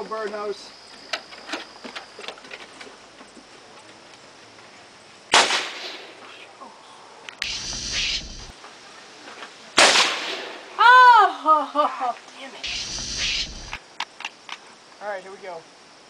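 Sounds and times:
rough noise with low rumble: 7.4 - 8.6, 12.6 - 13.8.

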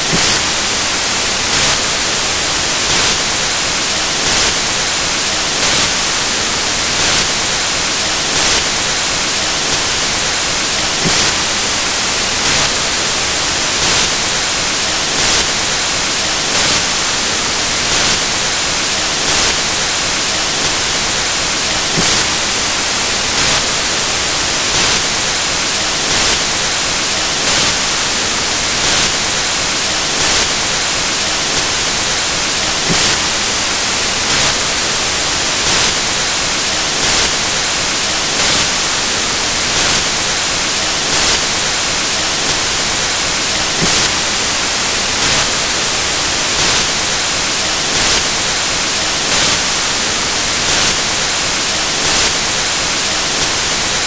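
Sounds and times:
loud static hiss: 0.0 - 54.0.

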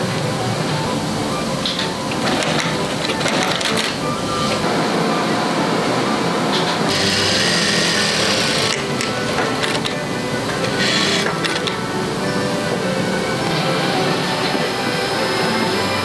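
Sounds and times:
sewing machines stitching: 1.6 - 4.7, 6.5 - 11.9.

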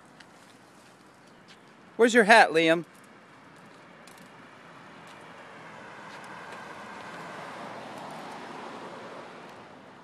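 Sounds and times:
car passing: 1.8 - 10.0.

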